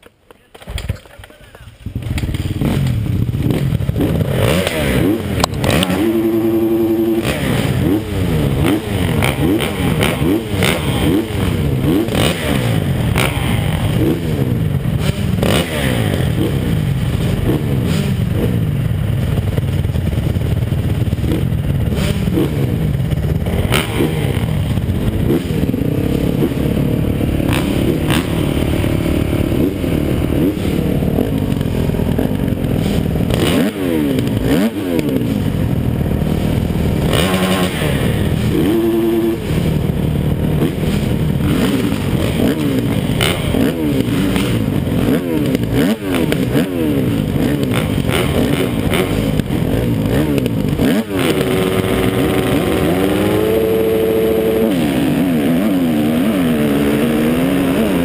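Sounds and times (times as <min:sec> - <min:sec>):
motocross engines revving: 0:01.3 - 0:58.0.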